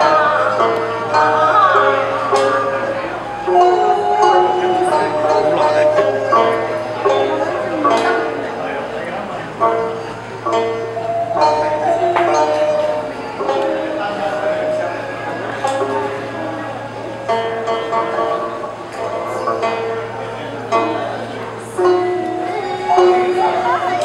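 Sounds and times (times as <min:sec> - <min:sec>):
end-blown flute: 0:00.0 - 0:09.2, 0:10.5 - 0:19.5
plucked lute notes: 0:00.0 - 0:24.0
two-string fiddle: 0:00.0 - 0:24.0.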